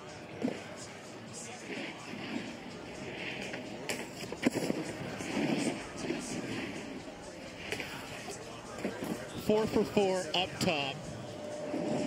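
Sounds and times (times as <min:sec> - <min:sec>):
snowboard scraping over snow: 0:01.5 - 0:10.1, 0:11.6 - 0:12.0.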